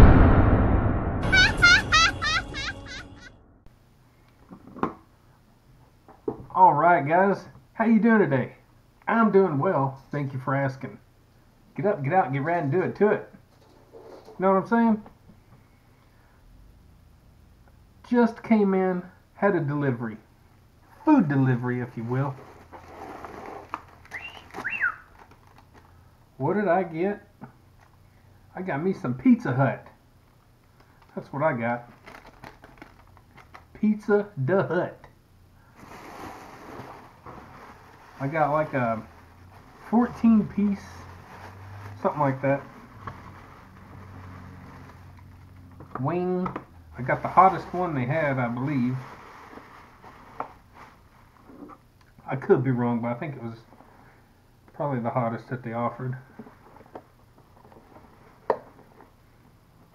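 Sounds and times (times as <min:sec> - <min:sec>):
plastic bag handling: 0:31.9 - 0:33.7, 0:35.8 - 0:45.4.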